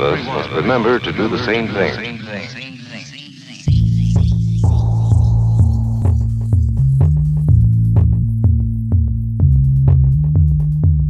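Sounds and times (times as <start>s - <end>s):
deep synth bass drone: 3.7s - 11.0s.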